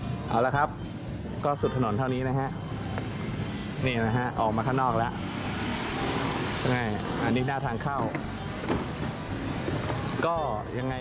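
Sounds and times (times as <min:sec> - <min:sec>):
street background noise: 0:00.0 - 0:11.0
people talking: 0:00.3 - 0:00.8, 0:01.4 - 0:02.7, 0:03.8 - 0:05.2, 0:06.6 - 0:08.4, 0:10.2 - 0:11.0.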